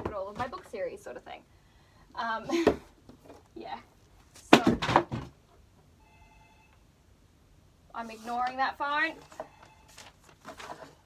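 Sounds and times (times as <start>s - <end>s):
phone ringtone: 6.0s - 6.8s, 9.3s - 10.0s.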